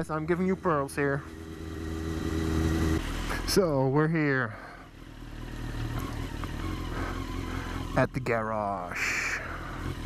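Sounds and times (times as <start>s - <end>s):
motorcycle engine low rumble: 0.0s - 10.0s.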